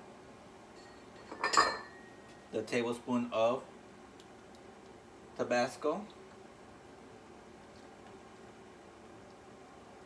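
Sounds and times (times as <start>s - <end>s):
glass bottles clinking: 0.8s - 2.0s.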